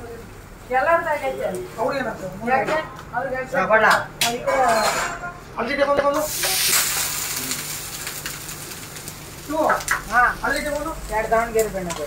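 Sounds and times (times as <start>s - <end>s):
batter sizzling on a hot griddle: 6.1s - 12.0s.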